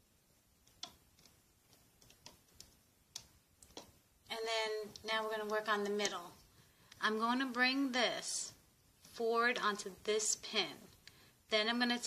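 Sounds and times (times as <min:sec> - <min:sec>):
loom hook clicking on plastic pins: 0:00.6 - 0:04.0, 0:04.8 - 0:07.0.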